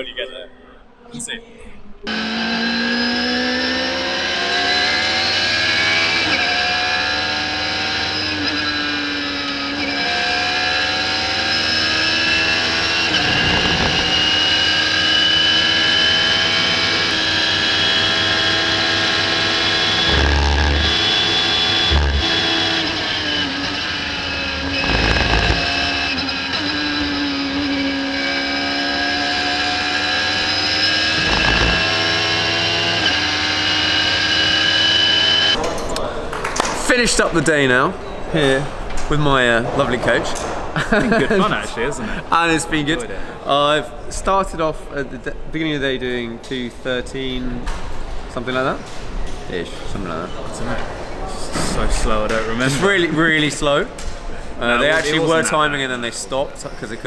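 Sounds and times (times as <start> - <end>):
racing car engine revving: 2.0 - 35.6.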